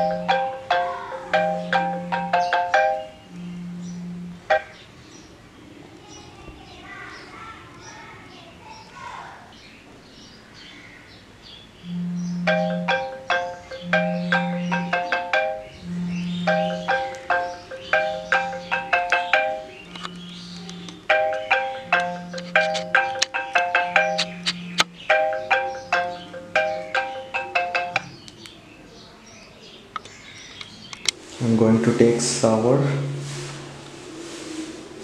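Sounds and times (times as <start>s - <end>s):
marimba ringtone melody: 0.0s - 4.8s, 11.8s - 28.2s
phone vibration buzzing: 1.2s - 4.8s, 11.8s - 28.1s.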